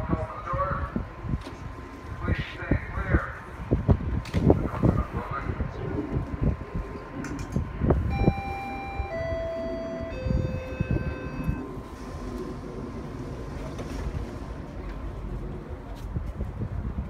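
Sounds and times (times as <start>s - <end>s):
train rumble: 0.0s - 17.0s
descending electronic chime: 8.1s - 11.7s.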